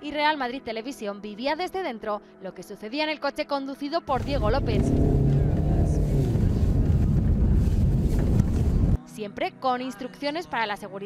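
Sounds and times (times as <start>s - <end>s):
car engine rumbling: 4.1s - 9.0s
wind buffeting microphone: 4.1s - 9.0s.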